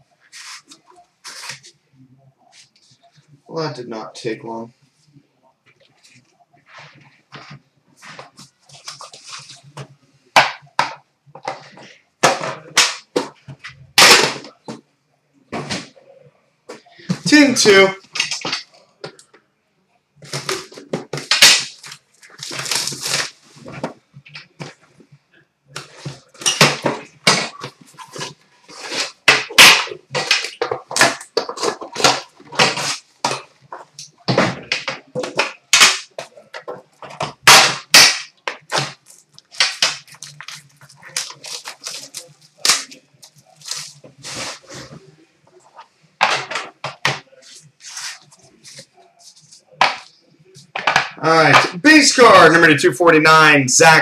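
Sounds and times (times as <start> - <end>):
card packaging crinkling and ripping: 20.2 - 23.7, 37.4 - 44.9
cardboard scraping: 25.8 - 33.9, 38.7 - 45.9, 47.3 - 49.7.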